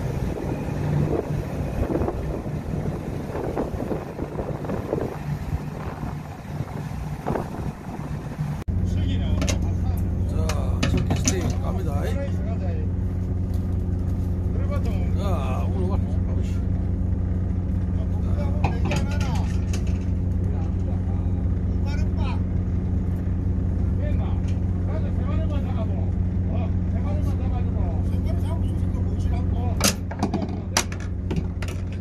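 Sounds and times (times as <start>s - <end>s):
boat engine idling: 0.0s - 32.0s
voices talking: 8.8s - 13.2s, 14.2s - 23.0s, 23.7s - 31.1s.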